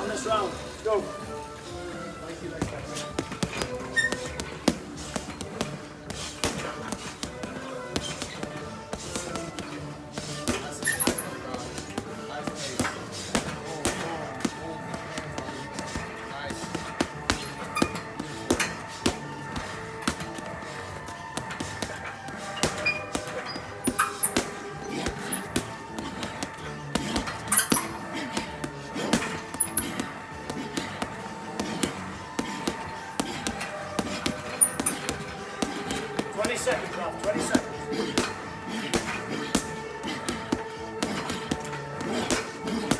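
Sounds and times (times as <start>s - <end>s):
music: 0.0s - 42.9s
boxing gloves punching heavy bag: 2.5s - 42.9s.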